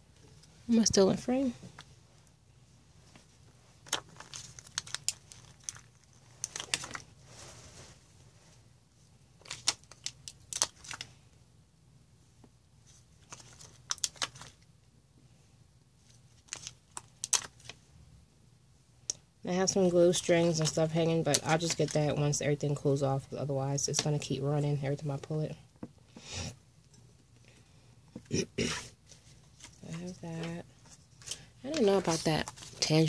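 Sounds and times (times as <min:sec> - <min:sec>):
plastic crinkling: 0:03.8 - 0:07.6, 0:09.4 - 0:11.1, 0:13.2 - 0:14.7, 0:16.3 - 0:17.8.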